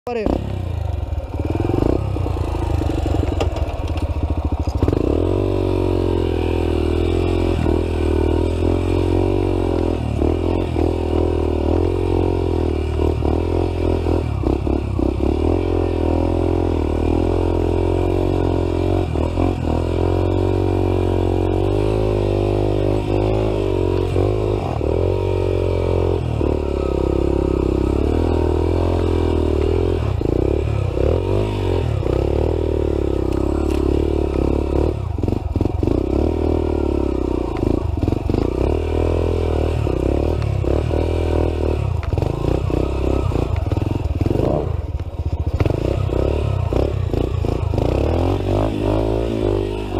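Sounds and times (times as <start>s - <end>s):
dirt bike engine revving: 0.1s - 49.9s.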